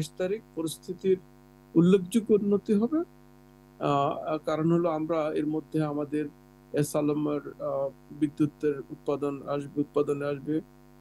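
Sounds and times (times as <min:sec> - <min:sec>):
man speaking: 0:00.0 - 0:01.2, 0:01.8 - 0:03.1, 0:03.8 - 0:10.6
electrical mains hum: 0:00.0 - 0:11.0.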